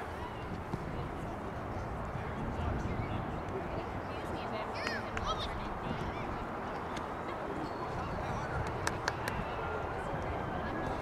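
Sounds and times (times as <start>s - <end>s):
open-air background noise: 0.0s - 11.0s.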